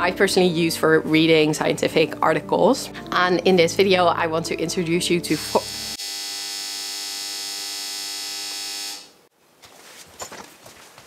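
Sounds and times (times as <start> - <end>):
electronic buzzing tone: 5.4 - 9.3.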